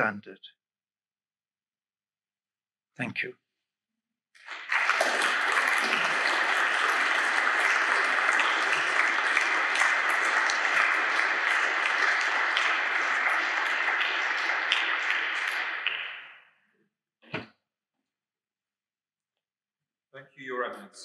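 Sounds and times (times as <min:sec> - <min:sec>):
audience applauding: 0:04.4 - 0:16.5.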